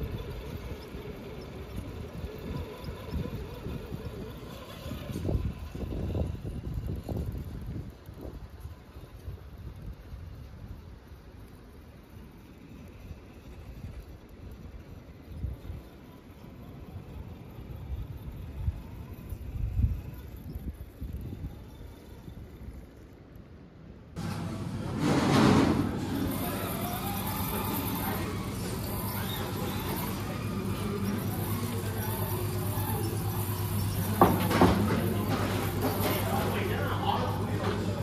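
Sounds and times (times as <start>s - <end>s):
wind on microphone: 0.0s - 10.8s
steady low hum: 0.0s - 38.0s
background voices: 24.2s - 38.0s.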